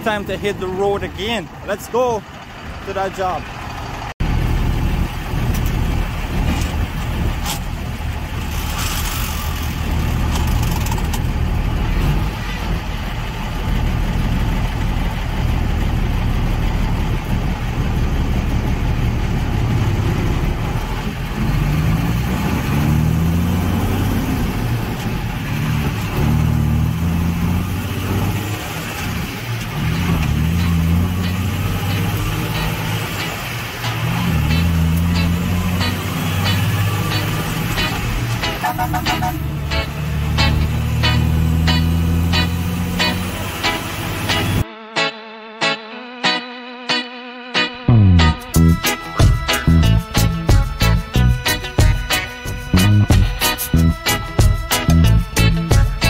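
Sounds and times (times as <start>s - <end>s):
diesel truck engine under load: 0.0s - 44.6s.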